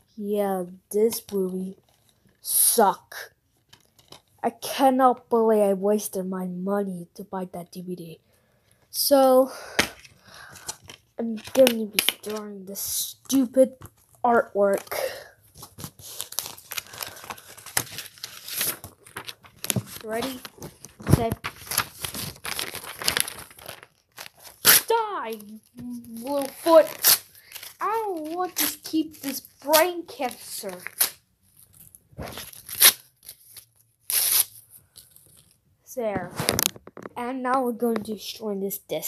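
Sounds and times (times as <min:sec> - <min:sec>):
paper crinkling and rustling: 0:03.5 - 0:04.4, 0:09.9 - 0:12.5, 0:13.3 - 0:37.1.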